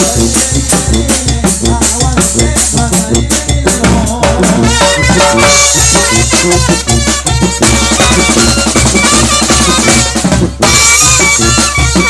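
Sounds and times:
snare drums and cymbal: 0.0s - 12.0s
horns playing: 4.6s - 12.0s.

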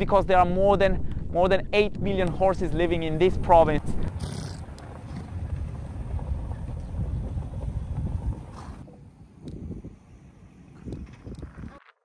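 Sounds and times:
wind buffeting microphone: 0.0s - 11.8s.

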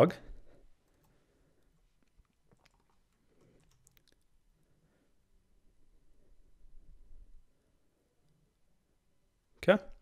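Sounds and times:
man speaking: 0.0s - 0.3s, 9.6s - 10.0s.

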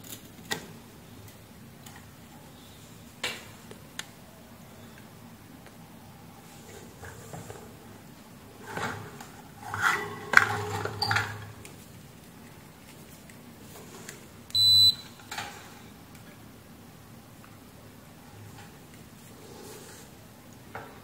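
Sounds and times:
multimeter high beep: 14.5s - 15.2s.

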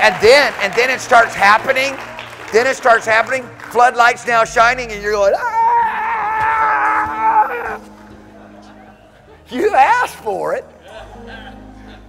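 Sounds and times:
man's high-pitched cry: 5.3s - 7.8s.

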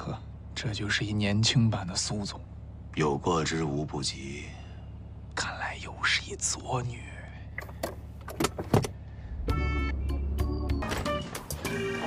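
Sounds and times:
car cabin hum: 5.4s - 11.0s.

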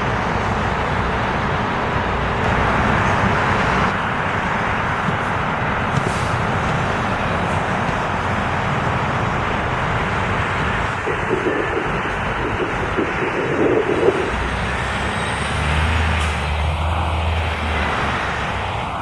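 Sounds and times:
diesel coach engine: 0.0s - 19.0s
road noise: 0.0s - 19.0s
deep engine drone: 6.6s - 19.0s.

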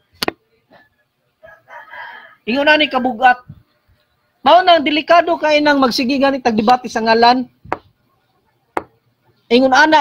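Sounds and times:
rooster crowing: 0.8s - 3.2s.

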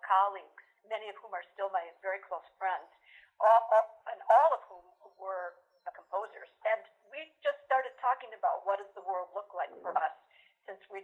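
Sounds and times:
woman talking over telephone: 0.0s - 11.0s.

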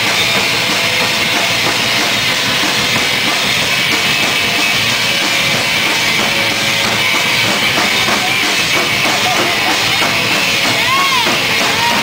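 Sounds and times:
heavy metal music: 0.0s - 12.0s.

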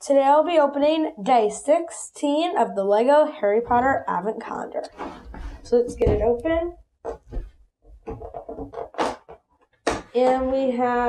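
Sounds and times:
cardboard ripping: 8.2s - 9.3s.

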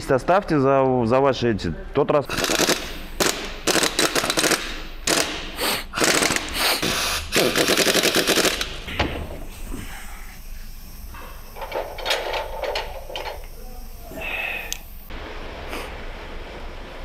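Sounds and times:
workshop noise: 1.8s - 16.2s
impact wrench rattling: 2.3s - 6.6s, 7.3s - 9.4s, 11.1s - 13.6s.

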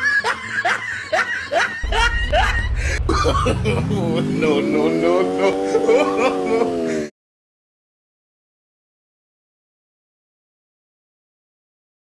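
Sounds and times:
low rumble: 1.8s - 5.3s.

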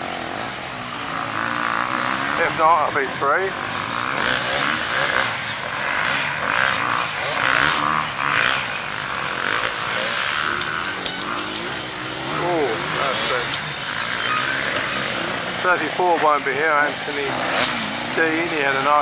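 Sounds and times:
motorcycle engines revving: 0.0s - 19.0s.

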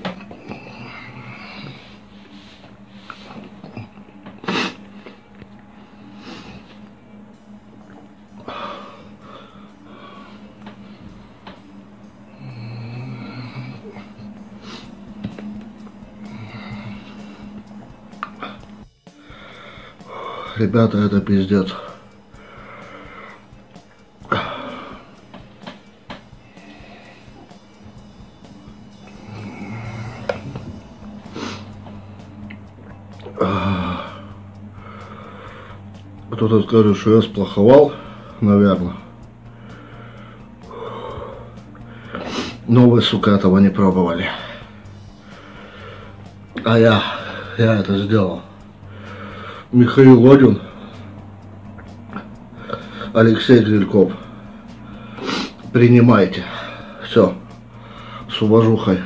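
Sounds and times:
man breathing hard: 0.0s - 20.8s, 21.6s - 36.1s, 39.0s - 42.7s, 44.2s - 47.7s, 48.4s - 49.7s, 52.2s - 53.2s, 54.1s - 55.7s, 56.4s - 58.3s
man sniffing: 0.5s - 5.2s, 29.1s - 32.0s, 39.6s - 42.7s, 54.3s - 55.7s.

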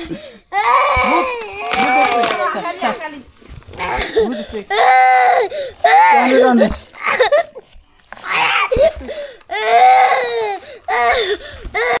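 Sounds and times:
young child crying: 0.5s - 2.6s, 8.3s - 12.0s.

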